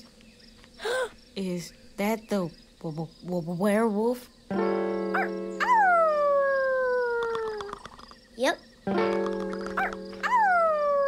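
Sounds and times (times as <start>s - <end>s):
background music: 4.5s - 6.2s, 8.9s - 10.9s
person imitating wolf howl: 5.6s - 7.7s, 10.2s - 11.0s.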